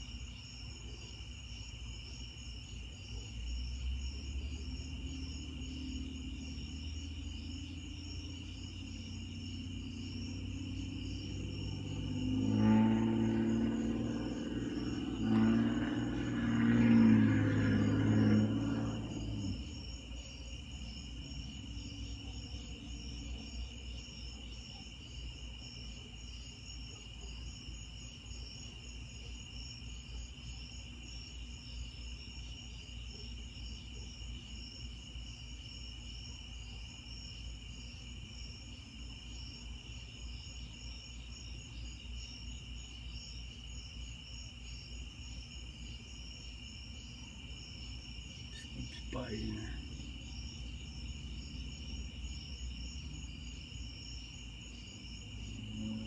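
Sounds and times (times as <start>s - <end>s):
night insects trilling: 0.0s - 56.0s.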